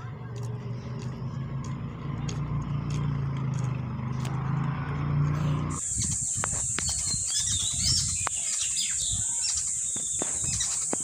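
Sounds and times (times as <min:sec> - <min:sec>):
vehicle engine running: 0:00.0 - 0:07.4.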